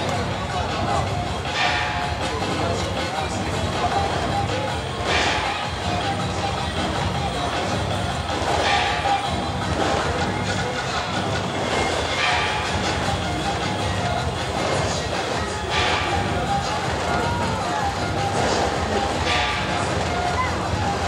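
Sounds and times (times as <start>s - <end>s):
crowd voices: 0.0s - 21.0s
procession music with high tone: 0.0s - 21.0s.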